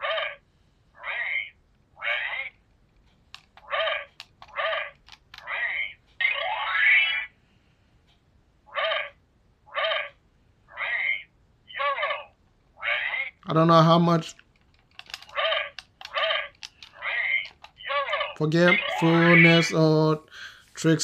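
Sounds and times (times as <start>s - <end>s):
electronic game beeps: 18.8s - 19.6s.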